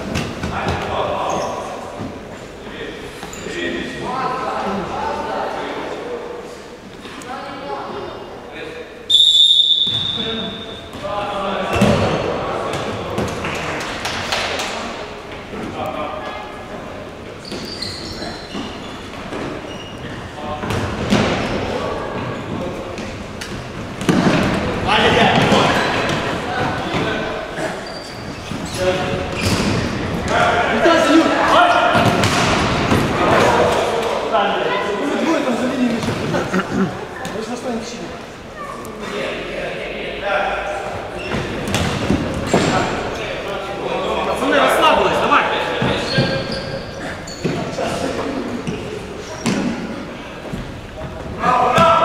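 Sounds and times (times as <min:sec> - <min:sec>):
referee's whistle blast: 0:09.1 - 0:10.8.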